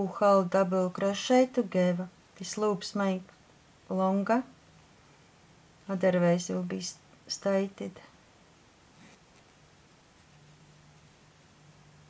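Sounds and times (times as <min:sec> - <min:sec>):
yarn rubbing on crochet hook: 0:08.8 - 0:11.9.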